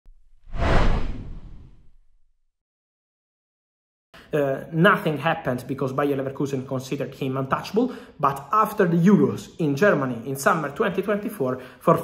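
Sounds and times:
whoosh sound effect: 0.1s - 2.2s.

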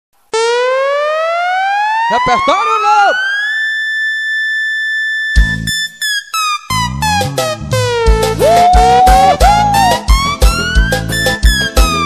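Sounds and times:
buzzy synthesized rising tone: 0.4s - 12.0s.

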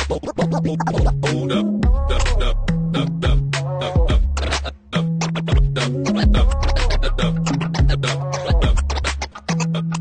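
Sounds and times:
dj scratching: 0.0s - 10.0s
electronic music with deep bass: 0.0s - 10.0s.

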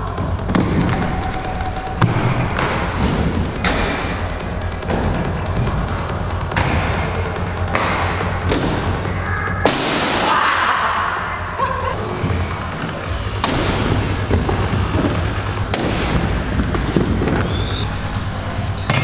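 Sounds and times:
background music: 0.0s - 19.0s
inline skate wheels rolling: 12.2s - 19.0s
knocks and thuds of skate landings: 13.4s - 17.7s.

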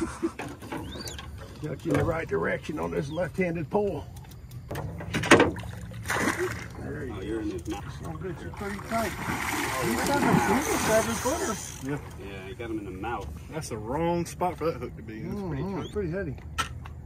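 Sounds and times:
alligator splashing in water: 5.3s - 7.0s, 8.4s - 12.1s.

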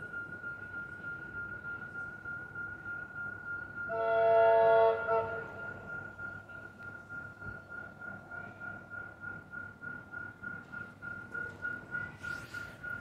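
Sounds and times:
train horn chord: 3.9s - 5.6s.

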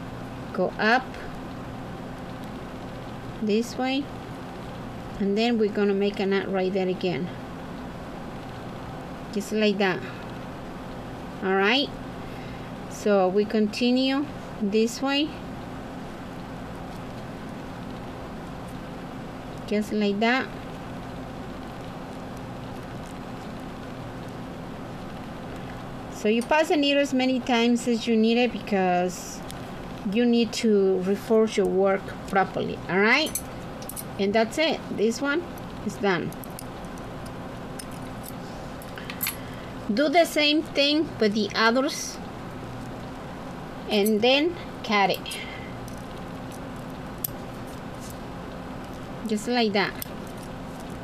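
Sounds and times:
low background hum: 0.0s - 51.0s.

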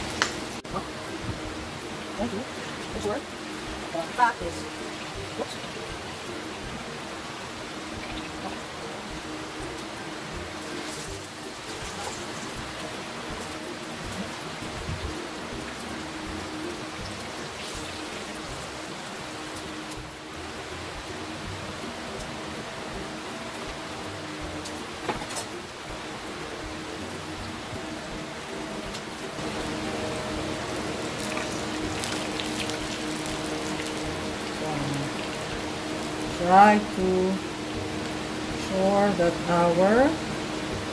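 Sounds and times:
meat sizzling in oil: 0.0s - 40.9s.

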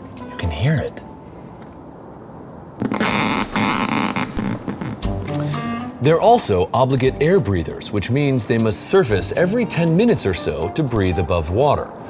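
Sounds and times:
crackling electric buzz: 2.1s - 7.4s, 10.8s - 12.0s
steady musical tones: 4.1s - 12.0s.

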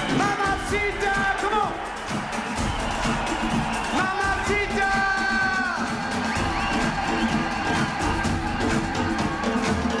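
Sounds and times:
live pop band instrumental: 0.0s - 10.0s
steady drum beat: 0.0s - 10.0s.

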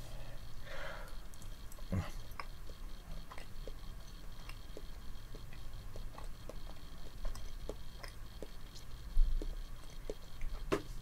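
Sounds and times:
breath: 0.0s - 1.3s
person chewing soft cheese: 1.2s - 10.6s.

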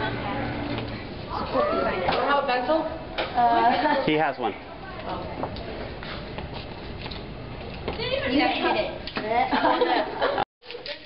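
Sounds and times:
busy hallway background noise: 0.0s - 11.0s.

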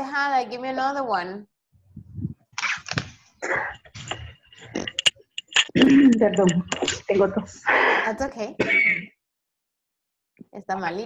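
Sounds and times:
woman clearing her throat: 5.7s - 6.3s, 8.6s - 9.1s
woman speaking: 5.9s - 8.6s, 10.6s - 11.0s.

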